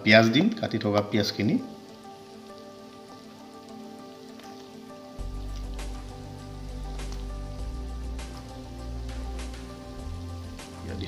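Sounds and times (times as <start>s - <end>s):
background music: 0.0s - 11.0s
meat sizzling in oil: 0.1s - 11.0s
low hum: 5.2s - 11.0s.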